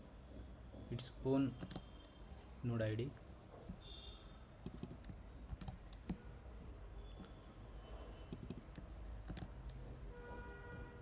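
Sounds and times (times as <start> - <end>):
computer keys clicking: 1.6 - 1.9, 4.6 - 6.2, 8.3 - 9.8.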